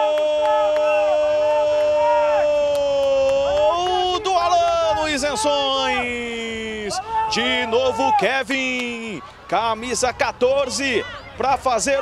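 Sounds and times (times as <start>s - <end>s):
commentator shouting goal cry: 0.0s - 12.0s.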